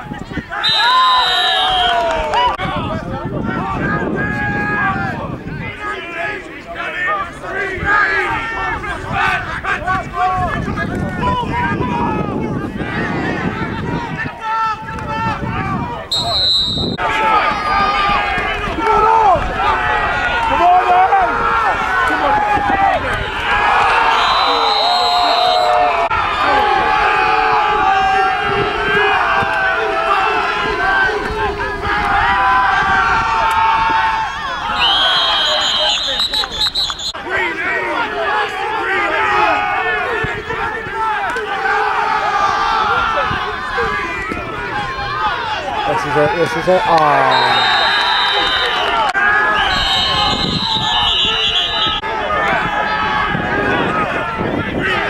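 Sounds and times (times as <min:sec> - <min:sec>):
crowd shouting and chatter: 0:00.0 - 0:55.0.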